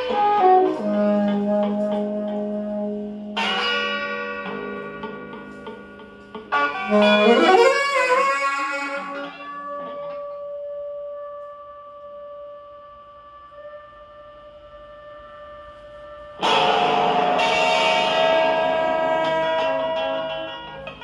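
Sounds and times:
saxophone playing: 0:00.0 - 0:04.8, 0:06.5 - 0:20.7.

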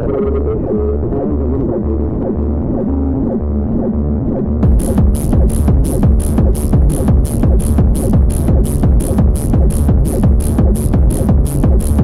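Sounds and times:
deep bass: 0:00.0 - 0:12.0
pounding kick drum: 0:04.6 - 0:12.0.

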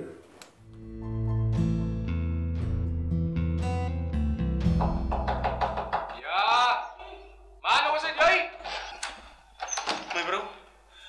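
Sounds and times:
guitar music: 0:00.6 - 0:05.1
knocking on a door: 0:04.7 - 0:06.2
man calling out: 0:06.2 - 0:07.0.

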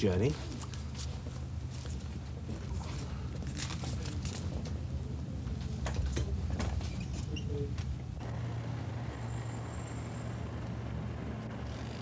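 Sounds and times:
motor traffic rumble: 0:00.4 - 0:12.0.

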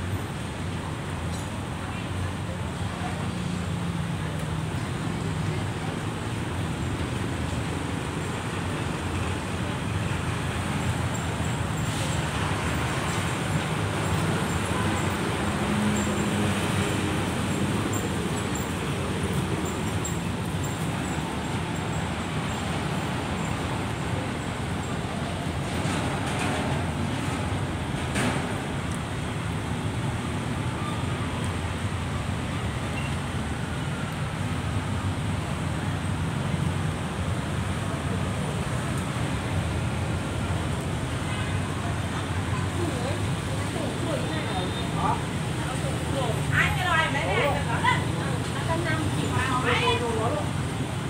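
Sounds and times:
road traffic rumble: 0:00.0 - 0:51.0.

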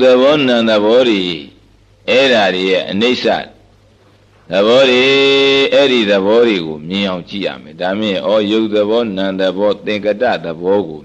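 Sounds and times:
man chanting a sermon: 0:00.0 - 0:03.6, 0:04.5 - 0:11.0.

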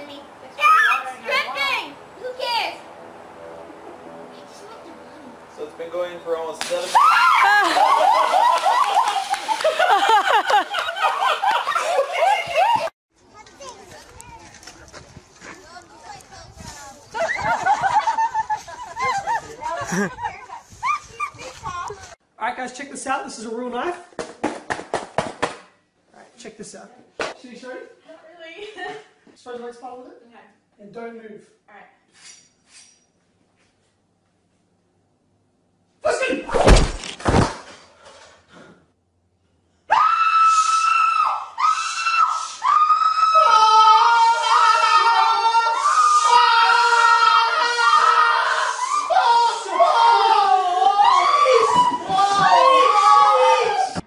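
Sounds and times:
gym mat falling with heavy thuds: 0:36.5 - 0:37.8.

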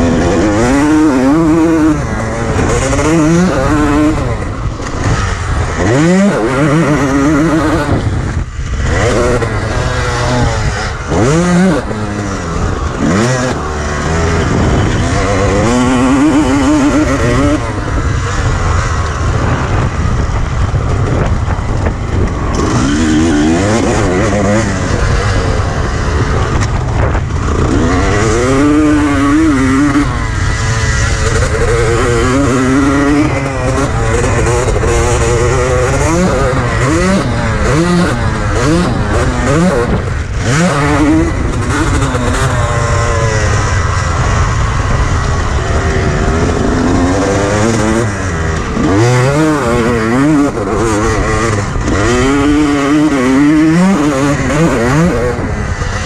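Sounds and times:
motocross engine revving: 0:00.0 - 0:56.0.

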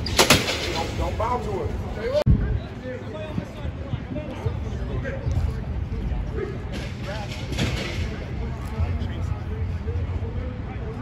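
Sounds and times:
steady low rumble: 0:00.8 - 0:11.0.

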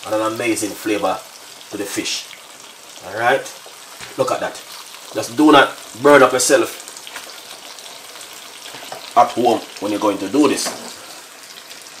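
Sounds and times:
fish sizzling in a frying pan: 0:00.0 - 0:12.0.

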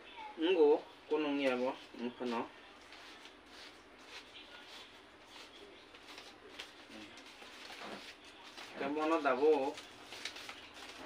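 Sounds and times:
palm leaves rustling and crackling: 0:02.2 - 0:11.0.

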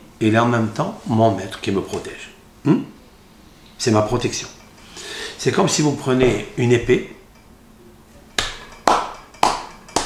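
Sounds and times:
sharp hand claps: 0:08.4 - 0:10.0.

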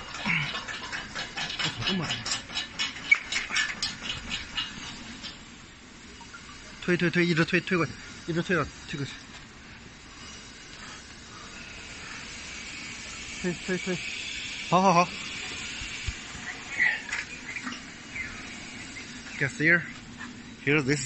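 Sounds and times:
steady high hiss: 0:02.9 - 0:21.0.

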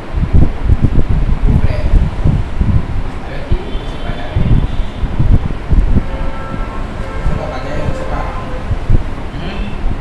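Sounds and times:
low rumbling noise: 0:00.0 - 0:10.0.

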